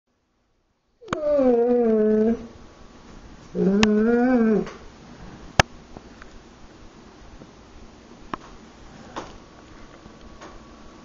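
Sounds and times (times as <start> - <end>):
dog whining: 1.0 - 2.5, 3.5 - 4.7.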